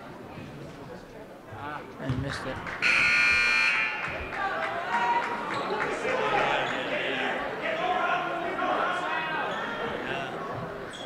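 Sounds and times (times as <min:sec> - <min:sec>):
voices in a hall: 0:00.0 - 0:11.0
scoreboard horn buzz: 0:02.8 - 0:04.1.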